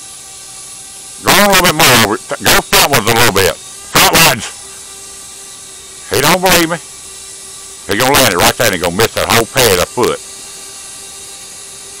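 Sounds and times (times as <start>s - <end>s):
faint even hum: 0.0s - 12.0s
steady hiss: 0.0s - 12.0s.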